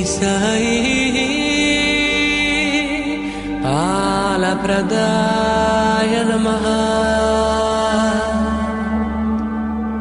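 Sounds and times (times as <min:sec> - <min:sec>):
devotional mantra chanting: 0:00.0 - 0:10.0
musical backing: 0:00.0 - 0:10.0.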